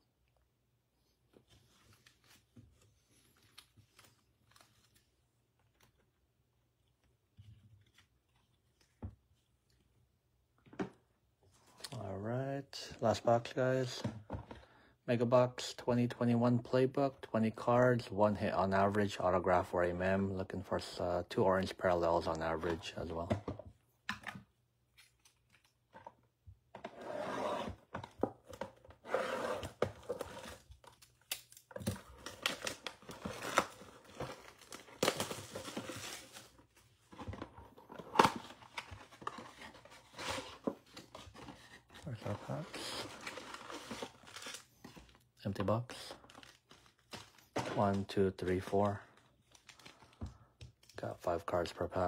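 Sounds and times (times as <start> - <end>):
foil packs crinkling: 42.0 - 45.2, 45.8 - 50.2.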